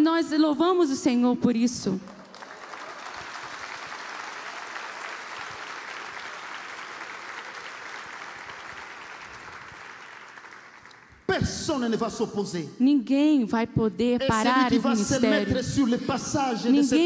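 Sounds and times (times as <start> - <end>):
audience clapping: 2.0 - 11.3.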